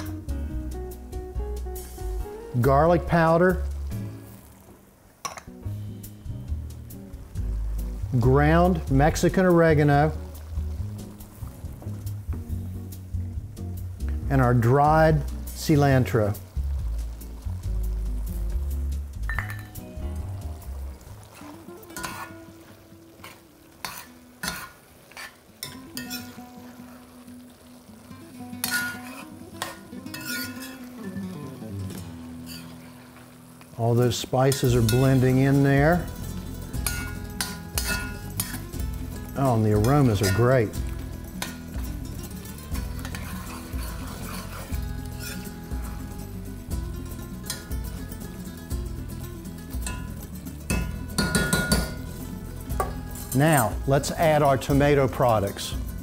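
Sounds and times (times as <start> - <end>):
meat sizzling: 0.0 - 56.0
spoon clinking against pot: 5.2 - 5.5, 19.3 - 19.8, 28.6 - 30.9, 36.7 - 38.8, 49.8 - 52.1
metal spoon scraping pot: 21.3 - 22.4, 23.2 - 26.4, 28.6 - 31.2, 32.3 - 33.0, 34.5 - 38.8, 39.5 - 40.8, 41.4 - 45.6.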